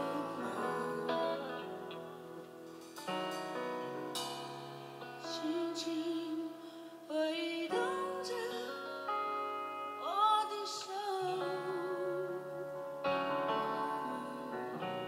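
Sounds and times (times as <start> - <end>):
woman singing into a microphone: 0.0 - 2.4, 5.2 - 15.0
instrumental accompaniment: 0.0 - 6.8.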